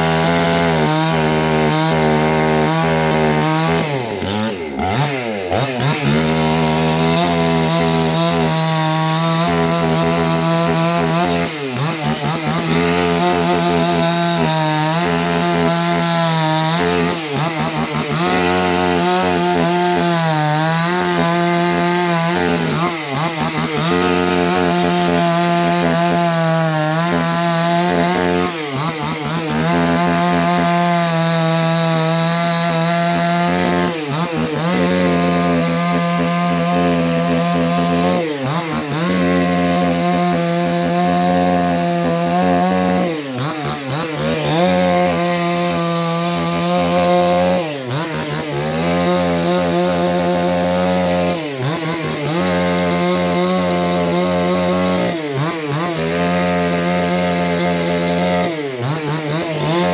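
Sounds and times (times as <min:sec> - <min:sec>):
chainsaw cutting through log: 0:00.0 - 0:59.9.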